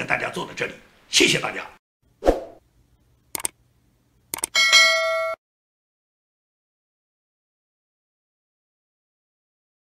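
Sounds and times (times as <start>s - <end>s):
mouse clicks: 3.3s - 3.6s, 4.3s - 4.5s.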